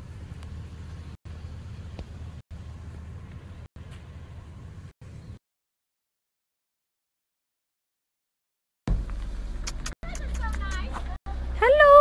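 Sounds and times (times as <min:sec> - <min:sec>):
car engine idling: 0:00.0 - 0:04.9.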